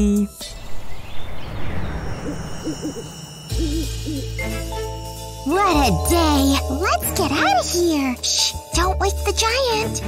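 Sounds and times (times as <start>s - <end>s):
owl hooting: 2.1s - 4.5s
soft background music: 3.5s - 10.0s.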